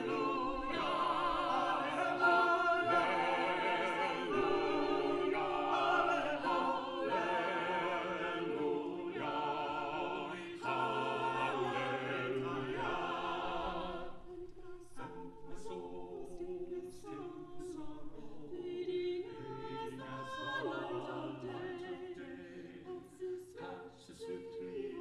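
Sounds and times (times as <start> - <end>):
a cappella group singing harmony: 0.0 - 25.0.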